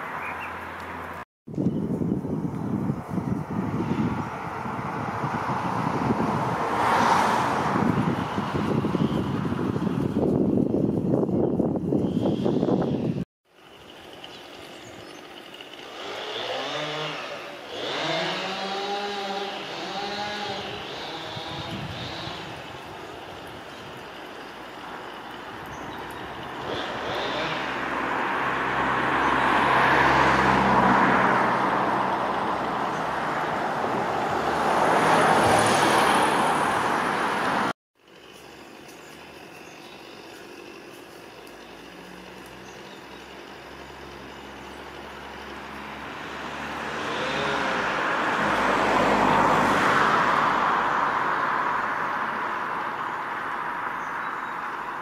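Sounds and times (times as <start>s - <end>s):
vehicle passing by: 2.7s - 11.0s, 14.8s - 37.8s, 41.4s - 55.0s.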